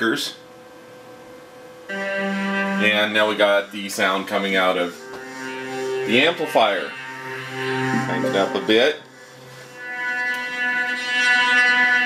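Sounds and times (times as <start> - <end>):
held chord of steady tones: 1.9 - 12.0.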